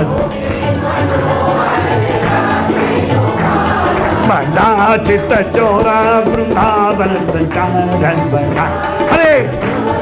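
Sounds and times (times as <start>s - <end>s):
group singing devotional song: 0.0s - 10.0s.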